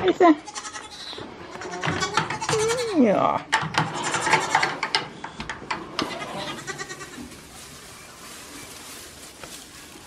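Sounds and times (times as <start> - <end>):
goat kids bleating: 0.4 - 3.1, 6.0 - 7.4.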